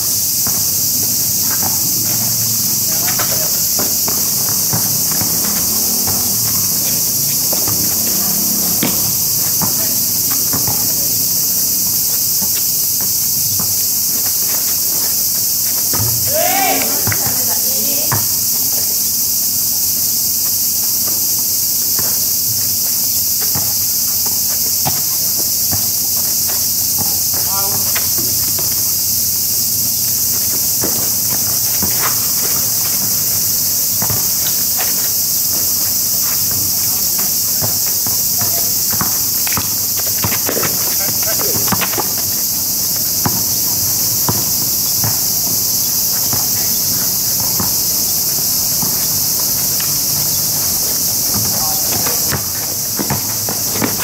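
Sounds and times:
basketball bouncing on asphalt: 0.0 - 54.0
insects chirping: 0.0 - 54.0
players shouting: 16.1 - 18.4
shoe scuffs: 30.5 - 43.4, 45.0 - 54.0.

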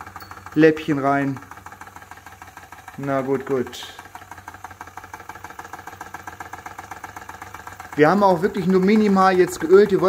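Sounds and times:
mechanical ticking: 0.0 - 10.0.

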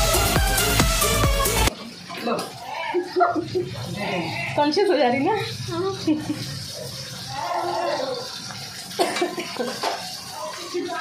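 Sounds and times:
water running from tap: 0.0 - 11.0
woman speaking: 4.0 - 6.3.

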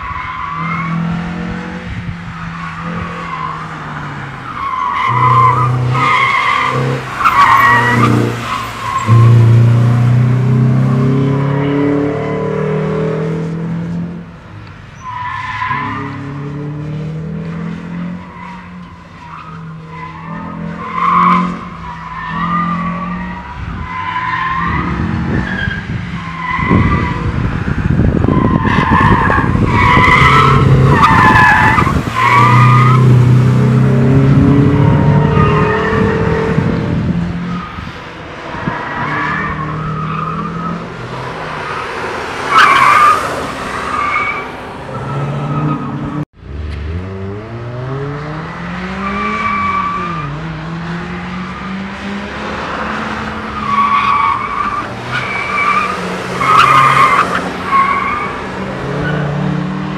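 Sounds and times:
car engine revving: 0.0 - 14.4, 15.2 - 59.9
tyres squealing: 2.6 - 12.6, 28.3 - 36.2, 53.2 - 59.3.

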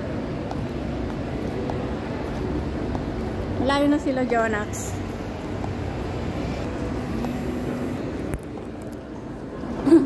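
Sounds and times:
indoor mall rumble: 0.0 - 10.0.

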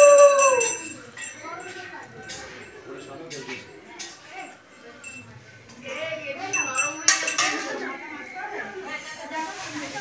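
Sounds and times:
faint voices: 0.0 - 10.0
hand bell ringing fast: 6.5 - 7.5.

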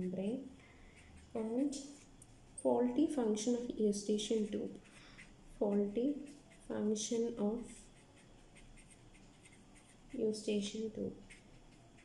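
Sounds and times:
pen scratching on paper: 4.2 - 12.0.

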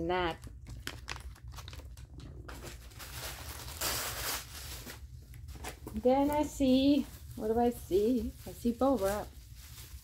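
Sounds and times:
wrapping rustling: 0.1 - 10.0.

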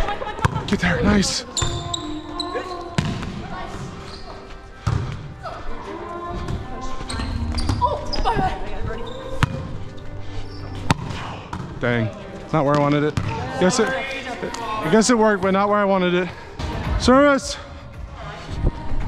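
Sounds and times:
shoes squeaking on hardwood floor: 1.5 - 2.9, 3.9 - 4.6, 6.9 - 11.0
volleyball being hit: 10.9 - 11.7.

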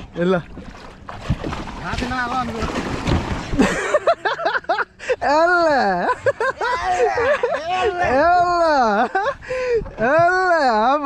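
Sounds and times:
water splashing and churning: 0.0 - 11.0
kayak sliding off raft: 0.6 - 4.0.

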